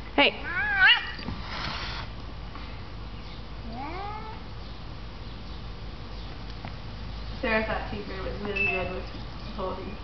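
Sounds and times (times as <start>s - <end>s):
cat meowing: 0.4s - 1.2s, 3.7s - 4.4s.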